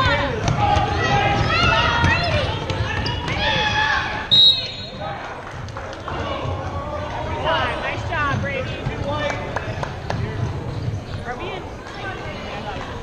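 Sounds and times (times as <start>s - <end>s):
basketball bouncing on court: 0.0s - 3.9s, 7.9s - 11.1s
people shouting: 0.0s - 5.2s
referee's whistle blast: 4.3s - 5.0s.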